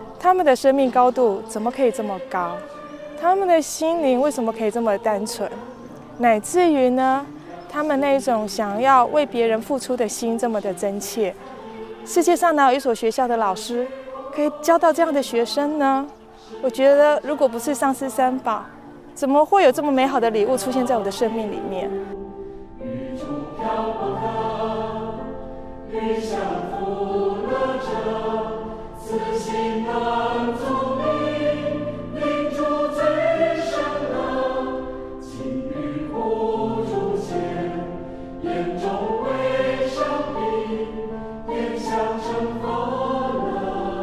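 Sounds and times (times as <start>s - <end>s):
choir singing long notes: 0.0s - 44.0s.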